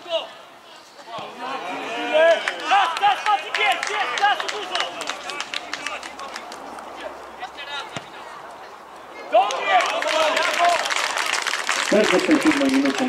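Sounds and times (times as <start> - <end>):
footballers shouting: 1.0 - 11.1.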